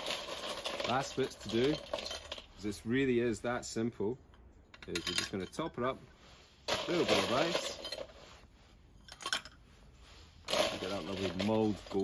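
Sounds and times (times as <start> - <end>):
ice cubes clattering on metal scoop: 0.0 - 2.6, 6.7 - 8.1, 10.5 - 12.0.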